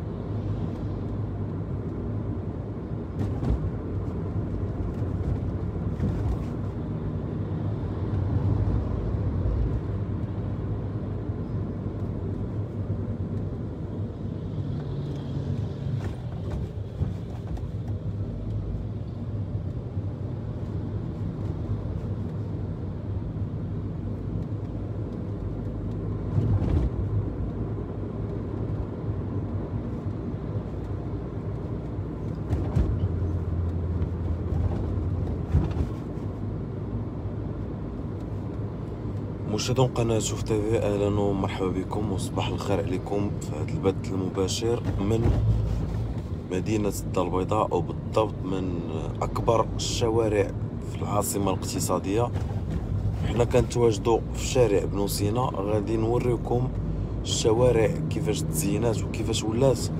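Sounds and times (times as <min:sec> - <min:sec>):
car engine drone: 0:00.0 - 0:59.9
road rumble: 0:00.0 - 0:59.9
car bumps: 0:32.3 - 0:33.1, 0:34.4 - 0:36.2.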